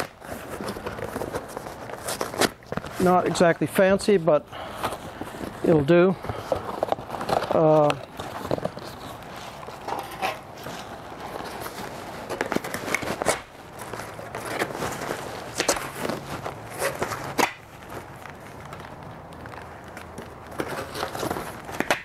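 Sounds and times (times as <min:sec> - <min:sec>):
cardboard scraping and crackling: 0:00.0 - 0:22.0.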